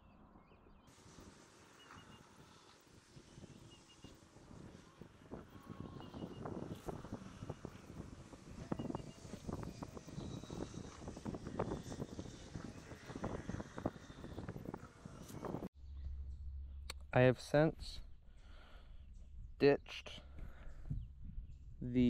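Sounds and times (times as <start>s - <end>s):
wind rumble on microphone: 0.1s - 16.9s, 20.2s - 22.0s.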